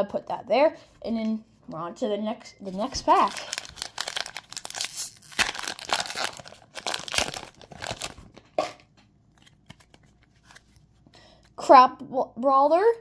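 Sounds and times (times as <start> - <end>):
foil wrapper tearing and crinkling: 2.8 - 8.4.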